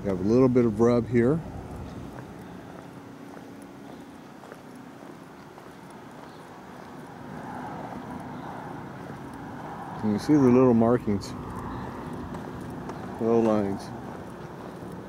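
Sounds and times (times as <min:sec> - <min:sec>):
footsteps on asphalt: 0:00.0 - 0:15.0
steady low hum: 0:00.0 - 0:15.0.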